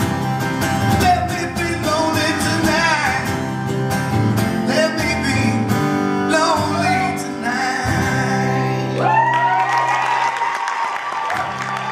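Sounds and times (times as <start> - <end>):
audience applauding and cheering: 8.8 - 11.9.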